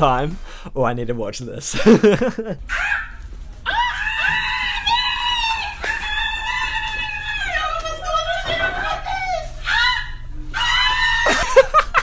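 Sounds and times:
high-pitched voices screaming: 2.7 - 11.8.

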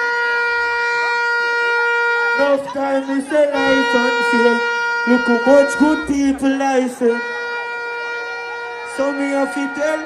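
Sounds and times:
horn long steady note: 0.0 - 10.0.

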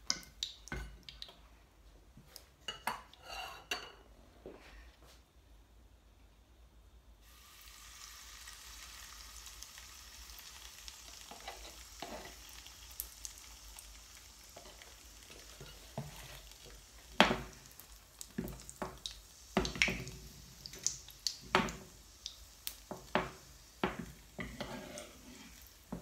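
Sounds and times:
cookware clattering: 2.7 - 4.0
batter sizzling in frying pan: 7.2 - 26.0.

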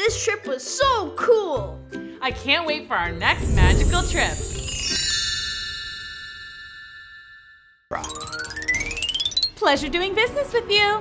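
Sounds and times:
bright chime chord: 3.3 - 7.9.

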